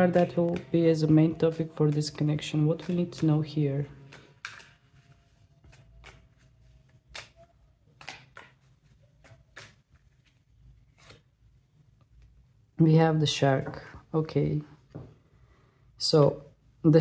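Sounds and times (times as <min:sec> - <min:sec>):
cards being shuffled: 0:00.0 - 0:11.3.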